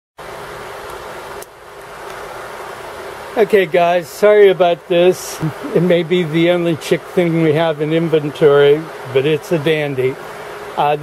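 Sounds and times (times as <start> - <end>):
hiss with low hum: 0.2 - 11.0.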